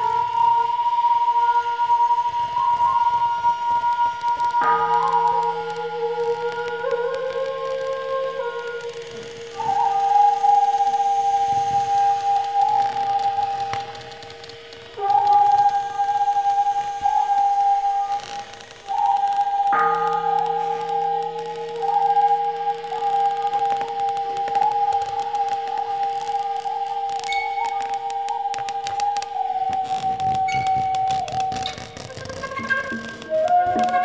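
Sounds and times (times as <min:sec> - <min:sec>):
flute playing held notes: 0:00.0 - 0:34.0
low drone: 0:00.0 - 0:34.0
sharp percussion clicks: 0:02.7 - 0:34.0.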